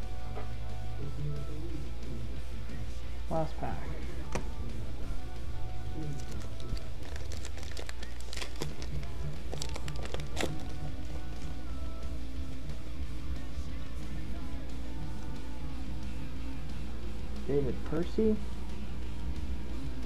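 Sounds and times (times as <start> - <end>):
background music with guitar: 0.0 - 20.0
foil wrapper crinkling: 6.0 - 10.8.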